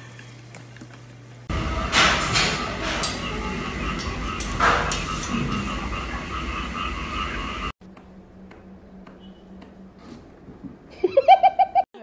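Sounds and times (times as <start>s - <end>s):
pulsing chorus of animal calls: 1.6s - 7.8s.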